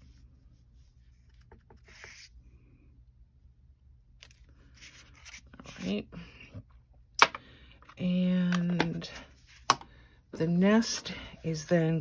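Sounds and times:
cardstock rustling and rubbing: 0.9 - 2.4, 4.2 - 5.9.

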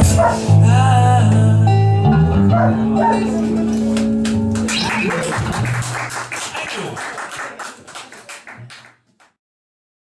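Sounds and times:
acoustic guitars playing: 0.0 - 6.6.

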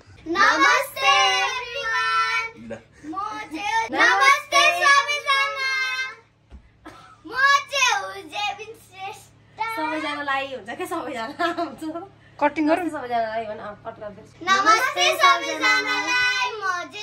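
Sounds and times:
young children singing loudly: 14.5 - 17.0.

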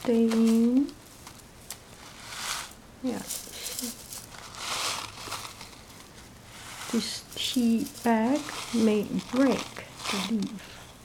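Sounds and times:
dry tea leaves rustling: 0.0 - 11.0
foil bag crinkling: 0.1 - 10.8.

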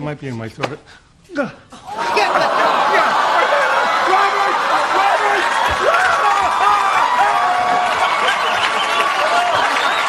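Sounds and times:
audience laughing and cheering: 1.8 - 10.0.

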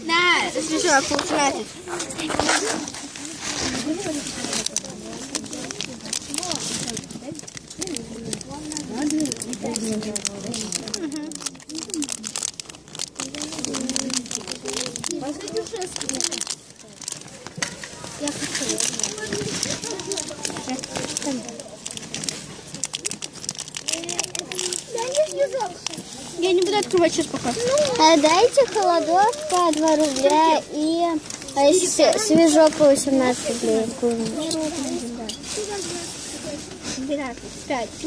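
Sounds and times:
crinkling and rustling handling: 0.0 - 38.0
indistinct voices talking: 0.0 - 38.0.

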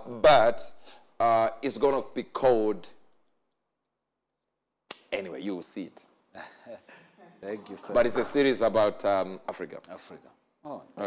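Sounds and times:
man's voice: 7.4 - 10.2.

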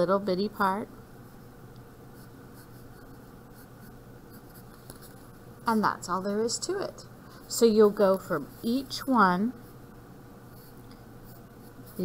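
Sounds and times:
pencil scratching on paper: 2.2 - 5.2, 10.5 - 12.0.

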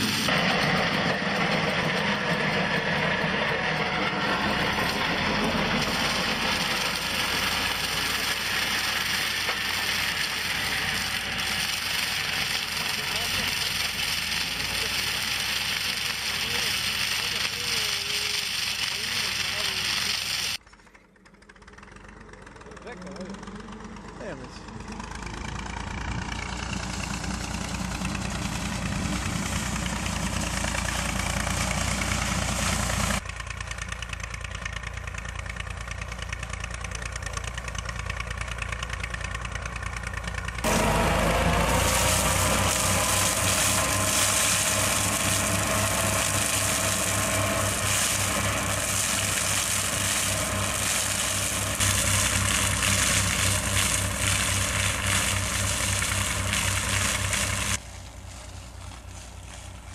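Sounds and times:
machine whine: 0.0 - 13.4
flail mulcher chopping plants: 0.0 - 20.6, 40.5 - 59.9
tractor engine running: 0.0 - 59.9.

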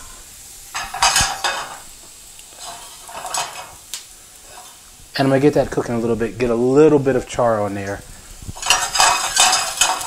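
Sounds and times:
food sizzling in oil: 0.0 - 10.0.

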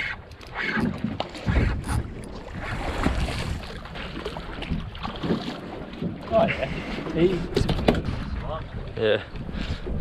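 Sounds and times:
wind on microphone: 0.0 - 3.7, 7.4 - 10.0.

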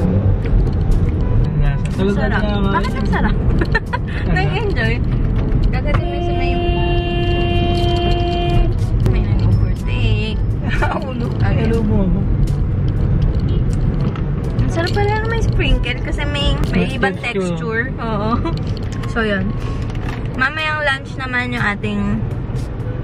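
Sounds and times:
car cabin road and engine rumble: 0.0 - 23.0
vehicle horn: 5.8 - 9.0.

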